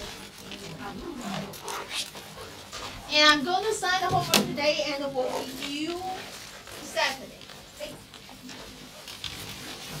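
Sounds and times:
rustling and shuffling: 0:00.0 - 0:10.0.

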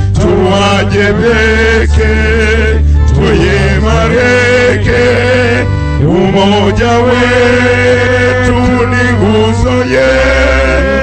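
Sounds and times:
person singing with vibrato: 0:00.0 - 0:11.0
sustained low bass notes: 0:00.0 - 0:11.0.

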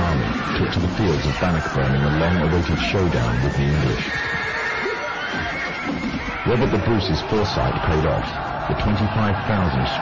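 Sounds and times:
background music: 0:00.0 - 0:10.0
horse whinnying: 0:03.2 - 0:06.8.

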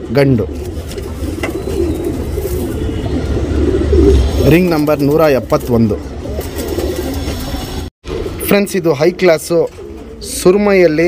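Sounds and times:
pigeons cooing: 0:00.0 - 0:08.4, 0:09.6 - 0:10.8.

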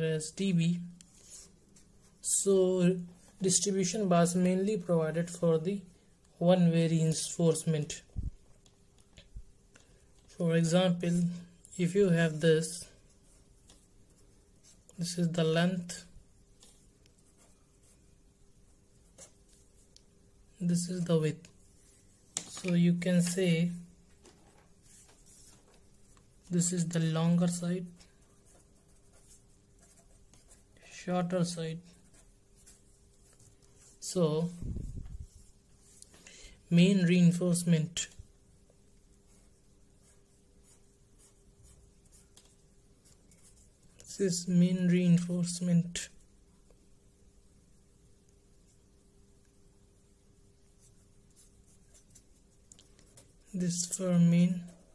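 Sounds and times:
pen scratching on paper: 0:28.3 - 0:30.8, 0:32.0 - 0:34.0, 0:39.3 - 0:43.8, 0:50.8 - 0:52.5.

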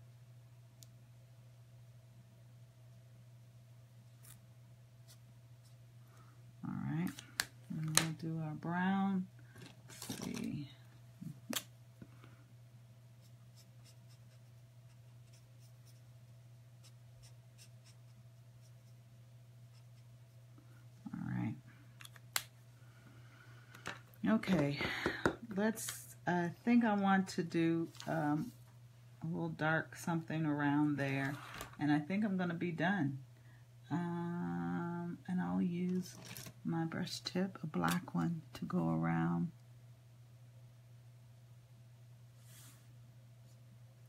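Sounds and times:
low electrical hum: 0:00.0 - 0:44.0
woman humming: 0:33.9 - 0:35.2.

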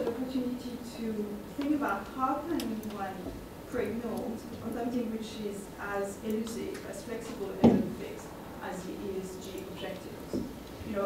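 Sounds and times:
woman speaking into a microphone: 0:00.0 - 0:11.0.

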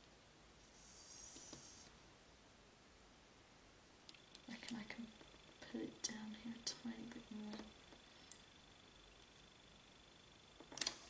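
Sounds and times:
faint high whine: 0:00.0 - 0:11.0.

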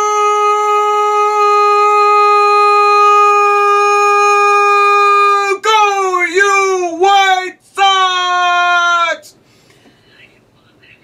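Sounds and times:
man yelling long cheer: 0:00.0 - 0:09.4.

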